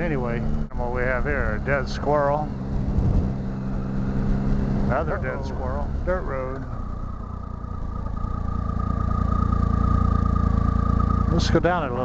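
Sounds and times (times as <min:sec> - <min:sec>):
high whine: 0:00.0 - 0:12.0
motorcycle engine accelerating: 0:00.0 - 0:12.0.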